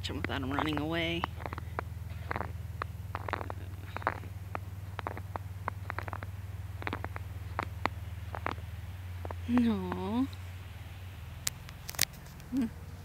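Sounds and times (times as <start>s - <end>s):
faint clicks and ticks: 0.0s - 12.7s
steady low hum: 0.0s - 13.0s.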